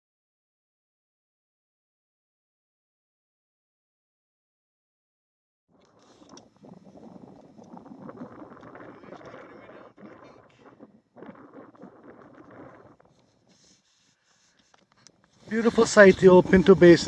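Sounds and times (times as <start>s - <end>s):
wind buffeting microphone: 5.8s - 13.8s, 14.6s - 17.0s.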